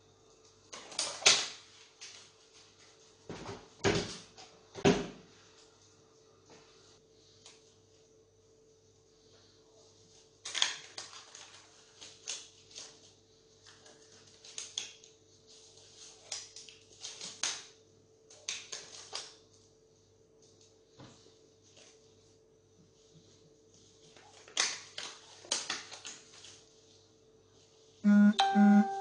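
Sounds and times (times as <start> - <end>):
plastic gloves crinkling: 10.0 - 17.5
faint steady hum: 26.2 - 29.0.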